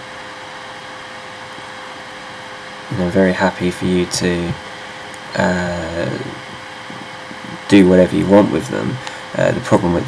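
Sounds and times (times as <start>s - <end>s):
faint constant hum: 0.0s - 10.0s.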